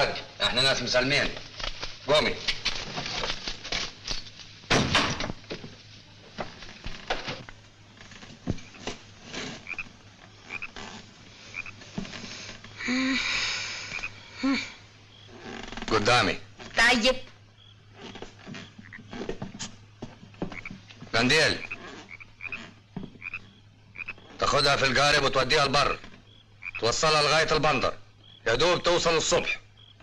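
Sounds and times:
frogs croaking: 6.4 - 30.0.

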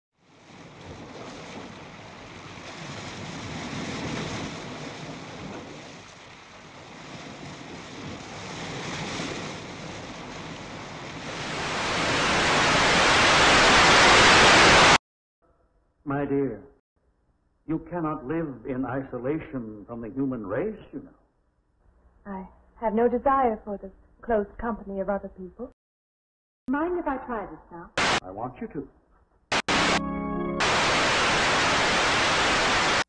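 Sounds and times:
television static hiss: 28.0 - 28.2, 29.5 - 30.0, 30.6 - 33.0.

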